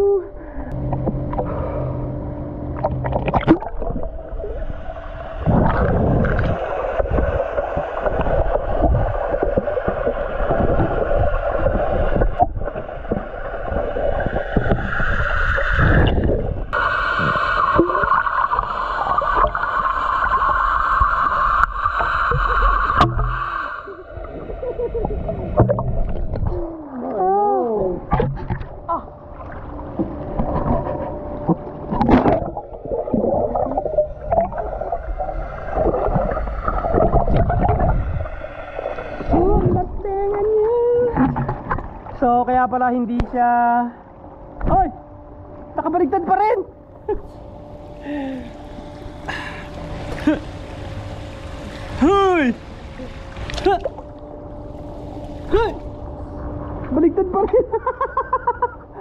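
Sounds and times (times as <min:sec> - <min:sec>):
person's voice underwater: 0:00.0 - 0:00.5, 0:26.4 - 0:28.2, 0:39.3 - 0:41.4, 0:52.0 - 0:54.0, 0:55.4 - 0:55.9
steady underwater rushing: 0:00.0 - 0:42.3, 0:46.8 - 0:57.0
churning water and bubbles: 0:02.6 - 0:42.7, 0:46.9 - 0:57.1
low underwater thumps: 0:25.5 - 0:26.6, 0:28.0 - 0:28.8.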